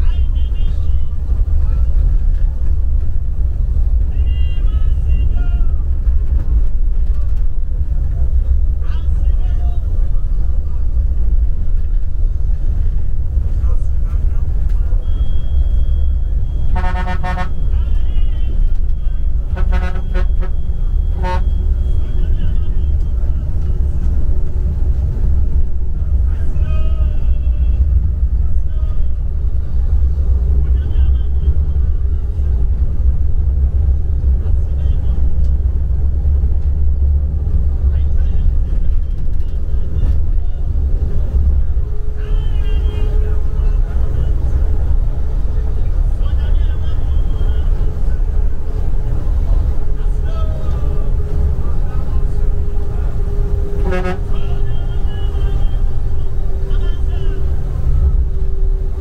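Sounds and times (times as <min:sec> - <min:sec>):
bus engine and road noise: 0:00.0 - 0:59.0
vehicle horn tooting: 0:15.1 - 0:18.1, 0:19.4 - 0:22.4, 0:53.8 - 0:56.0.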